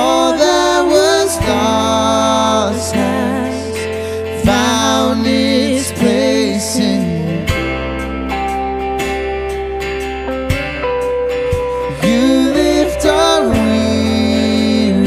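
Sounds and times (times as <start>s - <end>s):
man singing: 0.0s - 7.8s, 11.8s - 15.0s
steady bass: 0.0s - 15.0s
strummed acoustic guitar: 0.0s - 15.0s.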